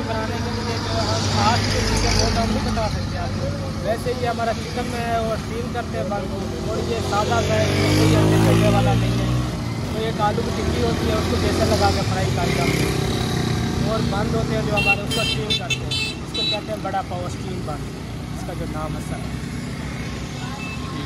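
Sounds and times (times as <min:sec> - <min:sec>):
man talking: 0:00.0 - 0:13.1, 0:13.8 - 0:19.4
passing vehicle engine: 0:00.0 - 0:14.8
road traffic: 0:00.0 - 0:21.0.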